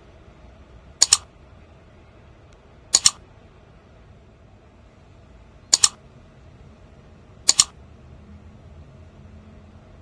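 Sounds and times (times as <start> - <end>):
faint background noise: 0.0 - 10.0
mouse double click: 1.0 - 1.3, 2.9 - 3.2, 5.7 - 6.0, 7.5 - 7.8.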